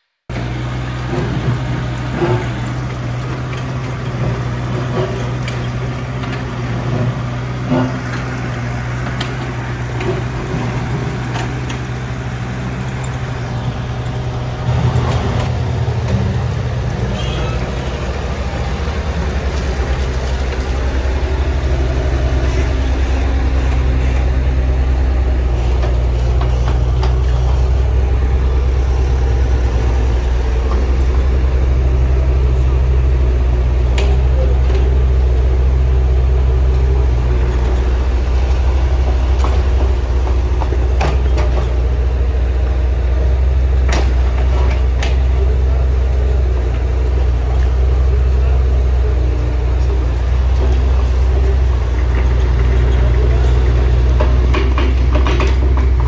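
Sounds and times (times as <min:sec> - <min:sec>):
knocks and clanks: 0:00.3 - 0:24.6, 0:25.4 - 0:29.2, 0:36.7 - 0:41.9, 0:43.4 - 0:45.5, 0:50.2 - 0:56.0
excavator diesel engine running: 0:00.3 - 0:56.0.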